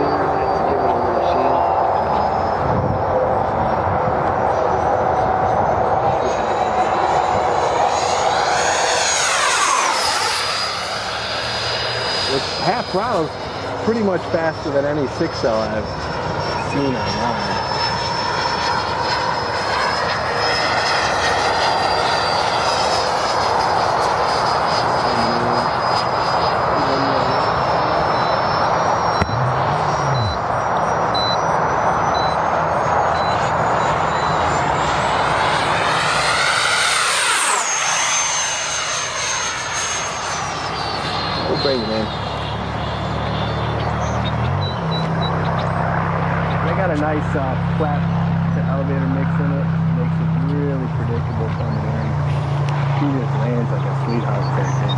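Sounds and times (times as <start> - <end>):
jet fan whine flying past: 0.0 - 54.9.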